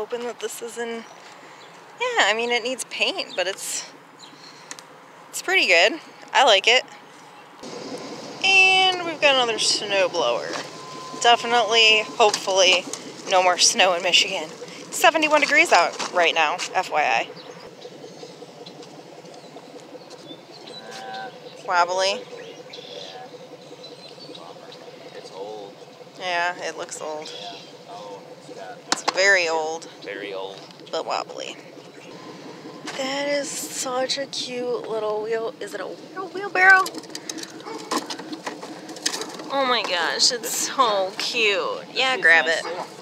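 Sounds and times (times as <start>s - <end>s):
faint bird chirps: 17.2s - 26.2s.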